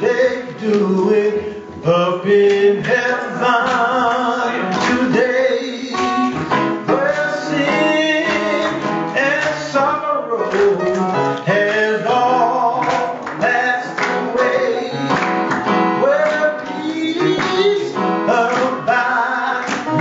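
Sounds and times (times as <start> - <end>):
congregation singing: 0.0 - 20.0
instrumental accompaniment: 0.0 - 20.0
man singing gospel song: 0.0 - 20.0.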